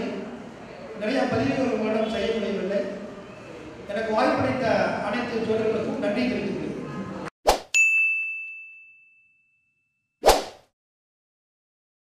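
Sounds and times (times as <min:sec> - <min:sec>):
bright ding chime: 0:07.7 - 0:10.1.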